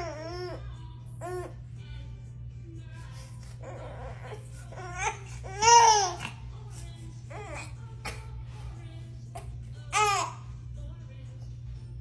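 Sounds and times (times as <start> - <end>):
infant crying: 0.0 - 1.6, 3.6 - 6.4.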